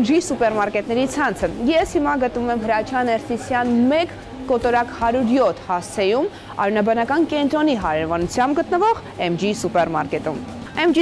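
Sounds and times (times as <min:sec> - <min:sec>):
woman talking: 0:00.0 - 0:11.0.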